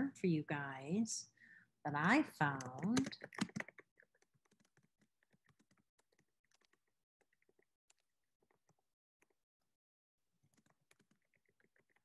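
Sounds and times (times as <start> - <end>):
computer keyboard typing: 2.5 - 9.4, 10.4 - 12.0.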